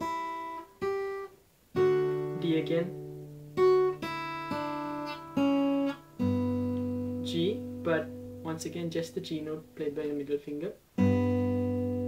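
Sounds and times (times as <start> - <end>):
acoustic guitar fingerpicked: 0.0 - 12.0.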